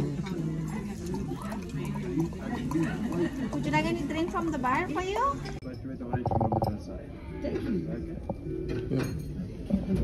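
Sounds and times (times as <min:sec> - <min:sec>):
quiet background chatter: 0:00.0 - 0:10.0.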